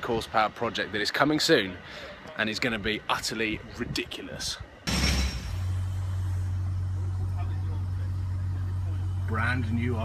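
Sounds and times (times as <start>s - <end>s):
car engine idling: 5.4s - 10.0s.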